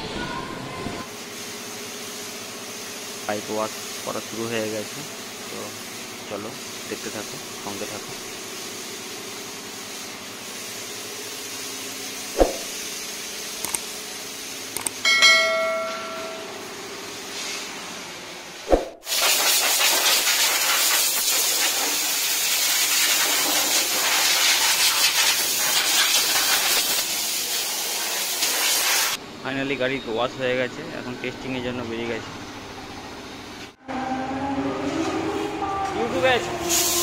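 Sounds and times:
pressure washer spray hiss: 0:01.1 - 0:14.8, 0:19.0 - 0:29.2, 0:36.6 - 0:37.0
hose water spray hissing: 0:01.2 - 0:14.8, 0:19.0 - 0:29.2, 0:36.6 - 0:37.0
sharp clicks: 0:13.6 - 0:13.9, 0:14.8 - 0:15.0
short ringing tone: 0:15.0 - 0:16.8.

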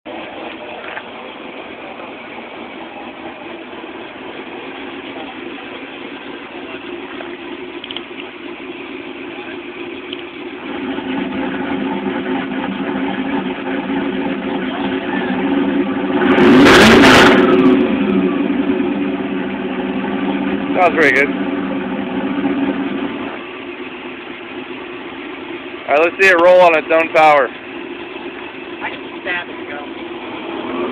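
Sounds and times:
car engine running: 0:00.1 - 0:30.9
engine revving: 0:10.1 - 0:23.4, 0:28.7 - 0:30.9.

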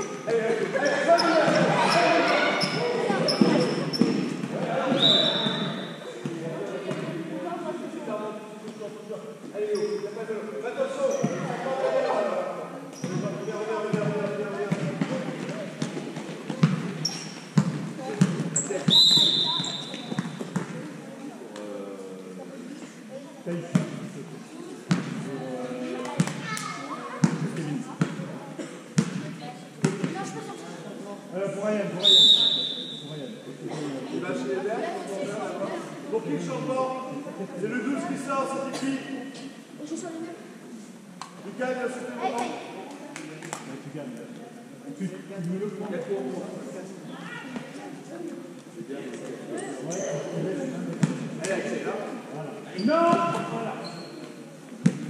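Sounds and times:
players and coaches talking: 0:00.0 - 0:55.0
basketball dribbling on court: 0:15.8 - 0:16.9.

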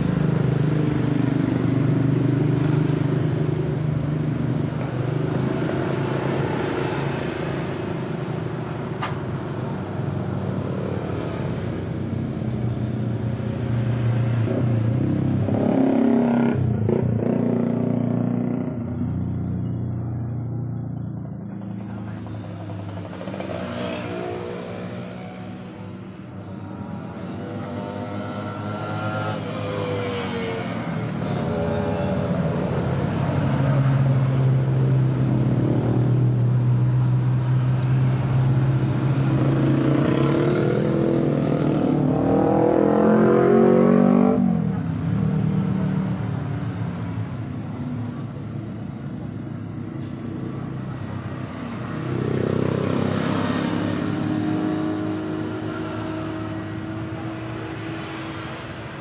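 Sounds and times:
motorcycles passing by: 0:00.0 - 0:59.0
motorbike accelerating: 0:13.9 - 0:19.4, 0:22.0 - 0:47.4, 0:50.2 - 0:59.0.

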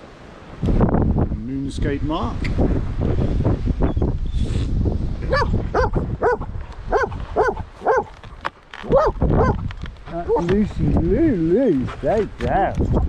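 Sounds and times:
wind rumbling on microphone: 0:00.0 - 0:13.0
dog yelping whines: 0:05.3 - 0:08.1, 0:08.9 - 0:09.6.

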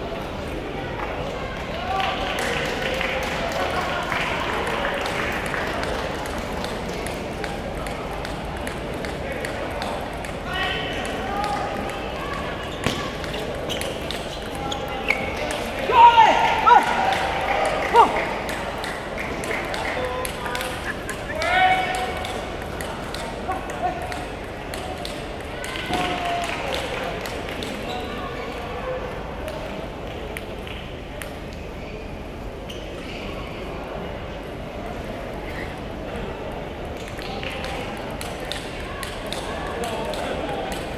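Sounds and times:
voices in a busy hall: 0:00.0 - 0:40.9
loud shouts: 0:15.8 - 0:18.4, 0:20.9 - 0:22.2.

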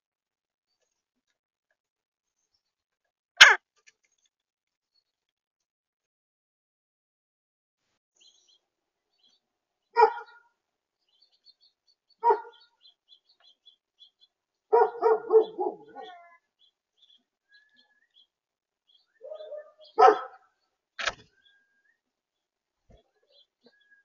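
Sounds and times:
woodpecker calling: 0:03.4 - 0:03.6, 0:12.2 - 0:16.3
small birds chirping: 0:08.2 - 0:24.0.

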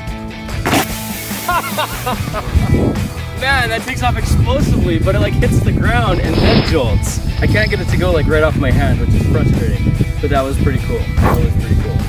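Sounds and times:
background music: 0:00.0 - 0:12.0
soda bottle spraying hiss: 0:00.7 - 0:02.2.

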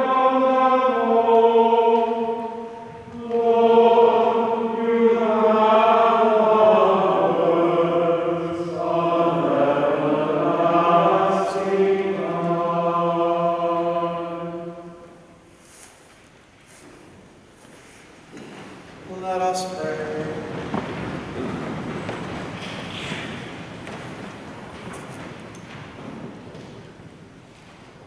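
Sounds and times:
voices singing slow chant: 0:00.0 - 0:15.4.

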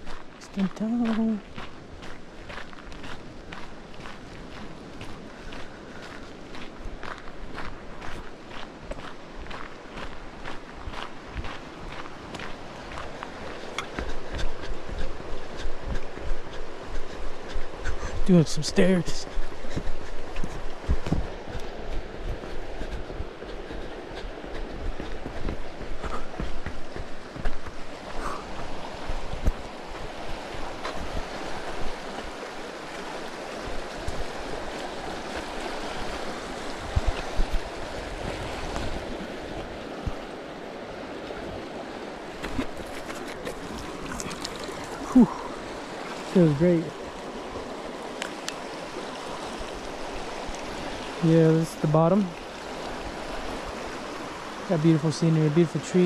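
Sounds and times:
river rushing over rocks: 0:00.0 - 0:56.0.

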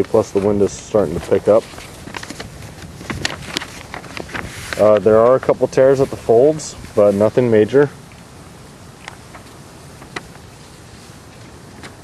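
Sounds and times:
paper map crinkling and rustling: 0:00.0 - 0:07.7, 0:09.0 - 0:12.0
wind noise on microphone: 0:00.0 - 0:07.9.

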